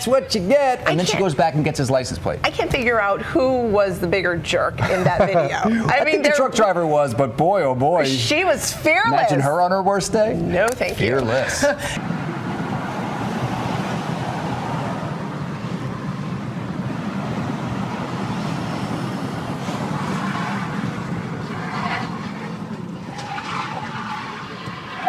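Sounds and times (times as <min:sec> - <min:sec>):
car road and engine rumble: 0:00.0 - 0:25.0.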